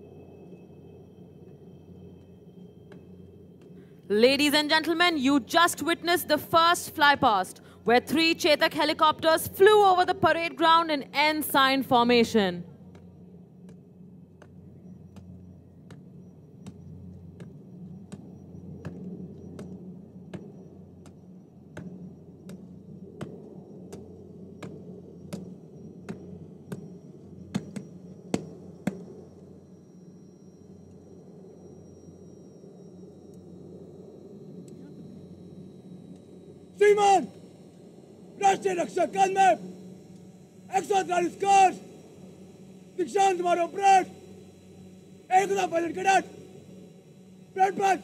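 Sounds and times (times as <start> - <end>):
steady low hum: 0.0 - 48.0
man calling out: 36.8 - 37.3, 38.4 - 39.7, 40.7 - 41.9, 43.0 - 44.2, 45.3 - 46.3, 47.6 - 48.0.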